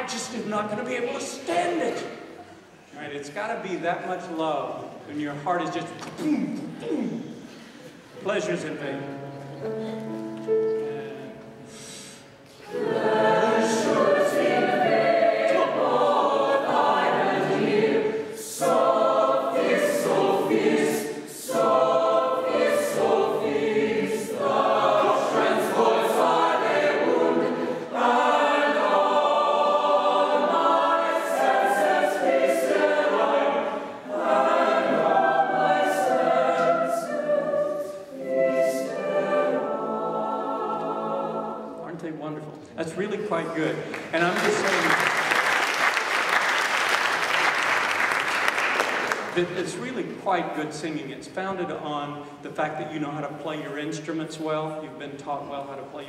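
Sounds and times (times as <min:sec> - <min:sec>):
mixed choir singing chords: 0:09.6 - 0:42.0.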